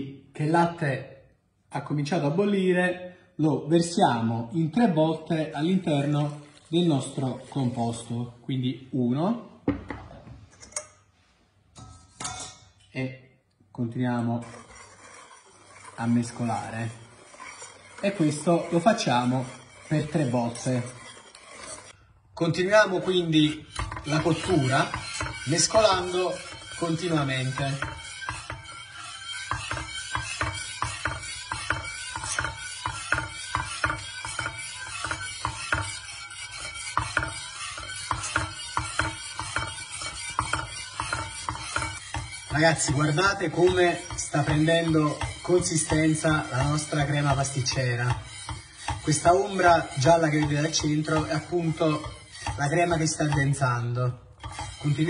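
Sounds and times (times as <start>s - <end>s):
metal sieve scraping a pan: 5.0s - 8.4s, 11.8s - 12.8s, 13.9s - 55.0s.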